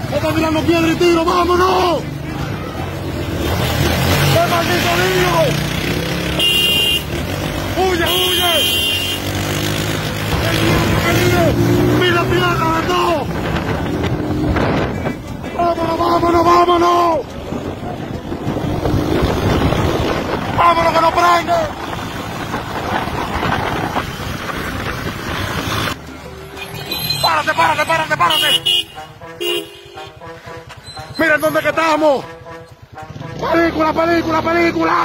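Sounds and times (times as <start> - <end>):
wind buffeting microphone: 17.4 - 21.0, 21.6 - 25.6.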